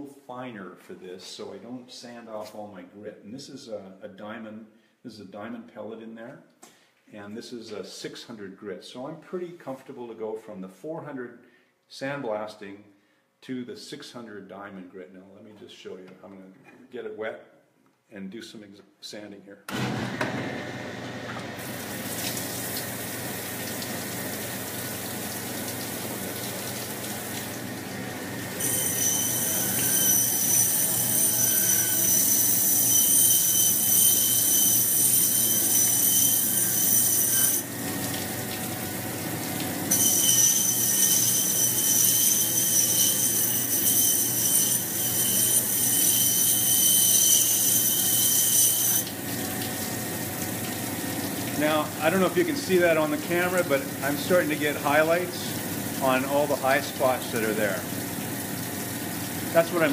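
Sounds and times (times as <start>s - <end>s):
water pouring: 21.6s - 28.0s, 49.1s - 59.9s
stone grinding whine: 28.6s - 37.7s, 39.9s - 49.1s.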